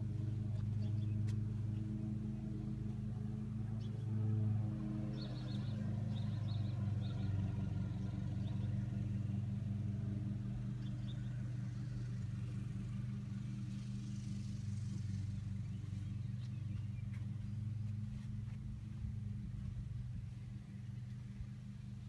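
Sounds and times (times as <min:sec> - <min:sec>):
low mechanical hum: 0:00.0 - 0:22.0.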